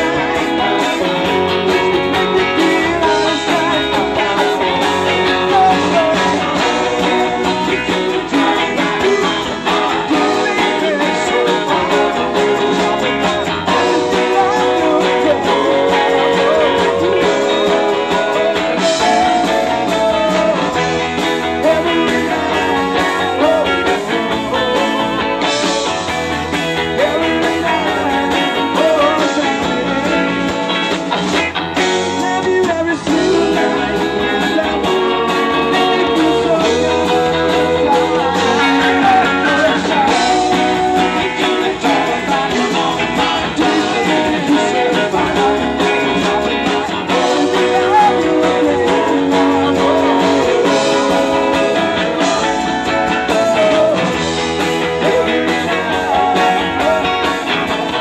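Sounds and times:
drums: 0.0s - 58.0s
electric guitars: 0.0s - 58.0s
man singing: 0.0s - 58.0s.

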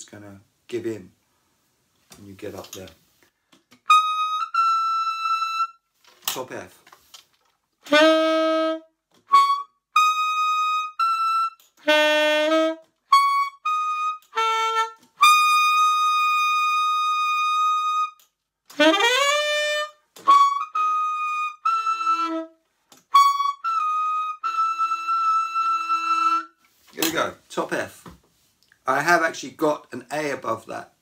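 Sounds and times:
tenor saxophone high notes: 3.9s - 5.8s, 7.8s - 26.6s.

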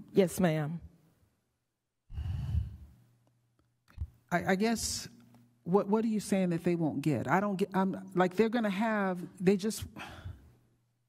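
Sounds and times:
person sighing: 2.1s - 3.0s.

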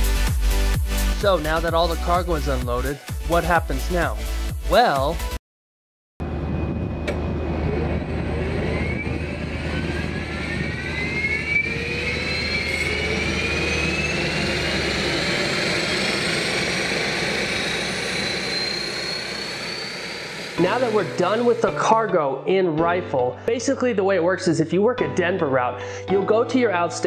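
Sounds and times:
turboprop engine whine rising: 0.0s - 5.4s, 6.2s - 22.1s
low rumble: 6.2s - 21.6s.

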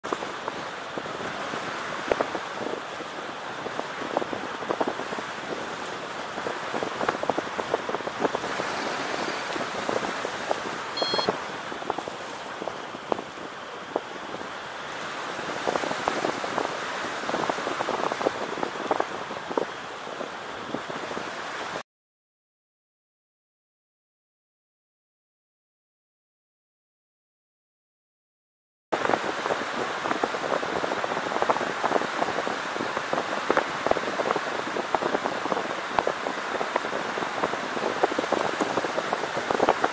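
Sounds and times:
wind buffeting microphone: 0.0s - 21.8s, 29.0s - 39.9s.

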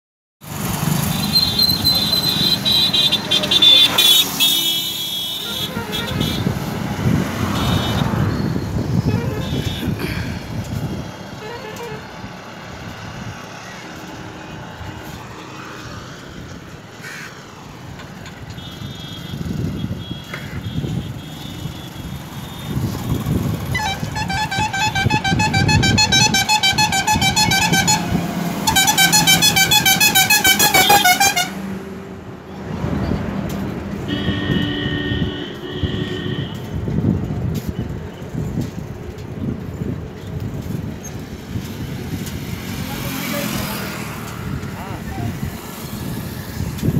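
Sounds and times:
engine and road rumble: 0.4s - 46.9s
vehicle horns honking: 1.0s - 6.7s, 7.4s - 10.2s, 11.3s - 12.2s, 18.5s - 31.7s, 34.0s - 36.8s
loud warbling horn: 1.3s - 6.6s, 7.5s - 9.9s, 11.4s - 12.1s, 23.7s - 31.6s, 34.1s - 36.6s
wind noise: 5.7s - 15.4s, 17.8s - 29.8s, 32.6s - 46.9s.

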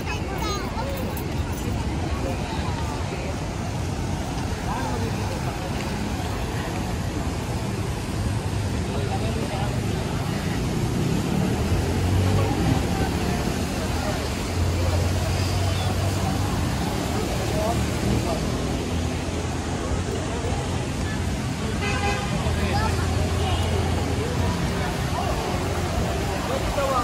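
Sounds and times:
car traffic: 0.0s - 27.0s
people talking: 0.0s - 27.0s.

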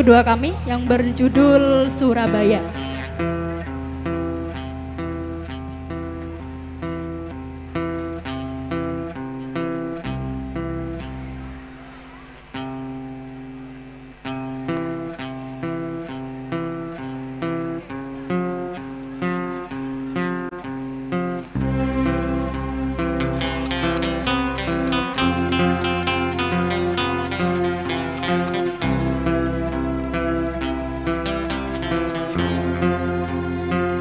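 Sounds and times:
acoustic guitars picking: 0.0s - 34.0s
bass guitar notes: 0.0s - 34.0s.

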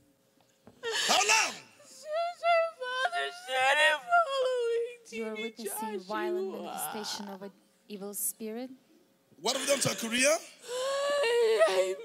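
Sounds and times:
woman sobbing and wailing: 0.8s - 7.4s, 10.6s - 12.0s.

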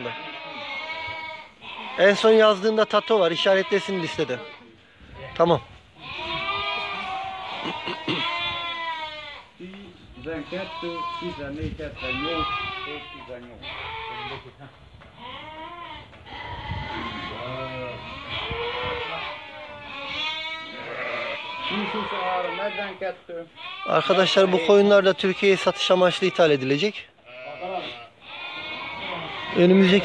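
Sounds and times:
sheep bleating: 0.0s - 14.6s, 15.2s - 30.0s.

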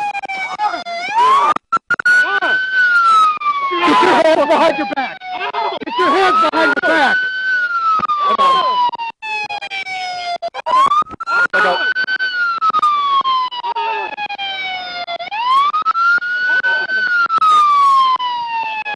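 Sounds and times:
police siren wailing: 0.0s - 18.9s.

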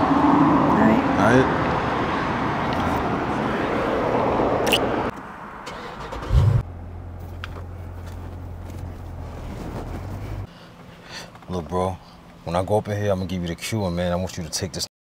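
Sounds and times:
road traffic noise: 0.0s - 14.8s
car engine starting and idling: 5.1s - 12.8s.

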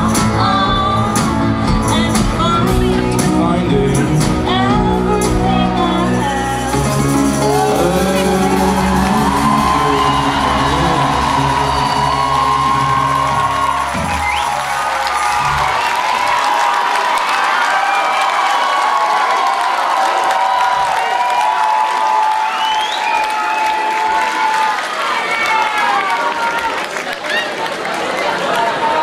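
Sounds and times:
live rock band playing: 0.0s - 15.9s
crowd cheering and clapping: 4.4s - 29.0s.

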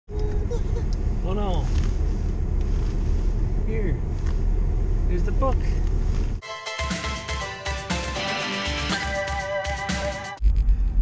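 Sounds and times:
car road and engine rumble: 0.1s - 6.4s.

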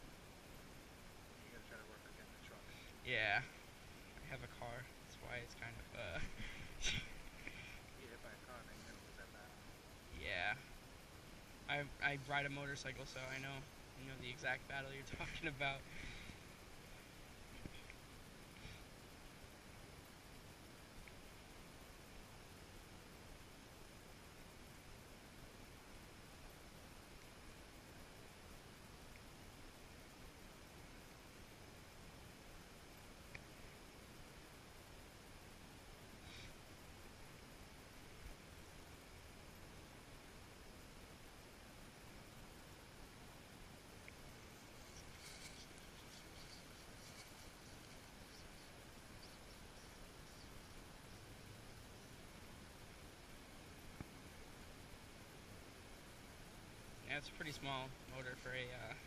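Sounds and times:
faint hiss: 0.0s - 59.0s
faint ticks: 5.6s - 8.1s, 15.1s - 19.5s, 20.1s - 23.5s, 26.4s - 31.9s, 32.9s - 39.7s, 43.8s - 54.6s
faint clicks: 21.0s - 21.2s, 33.3s - 33.5s, 44.0s - 51.3s.

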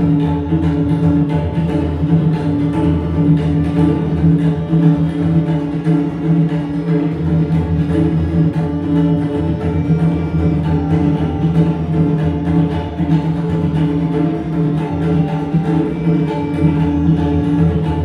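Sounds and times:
tabla drumming: 0.0s - 18.0s.

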